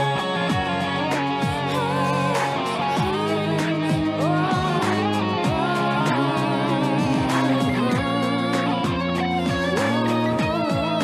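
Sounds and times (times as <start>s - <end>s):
electric guitar sliding notes: 0.0s - 11.0s.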